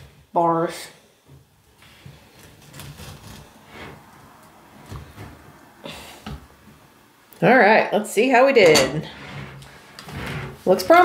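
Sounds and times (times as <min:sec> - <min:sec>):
spatula crunching and scraping: 0:01.9 - 0:05.4.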